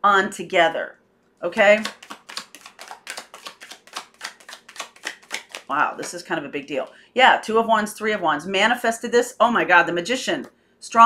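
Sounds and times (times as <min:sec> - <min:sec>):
cards being shuffled: 0:01.5 - 0:06.2.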